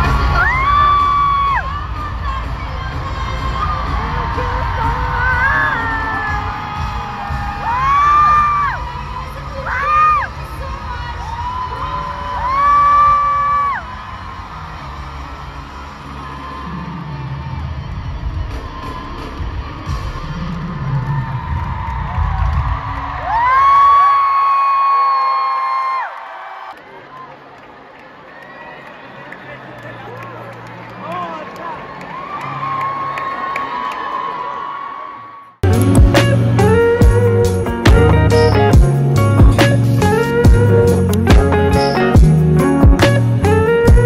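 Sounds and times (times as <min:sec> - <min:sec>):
music from loudspeakers: 0:00.0 - 0:23.3, 0:35.6 - 0:44.0
crowd cheering and screaming: 0:00.0 - 0:44.0.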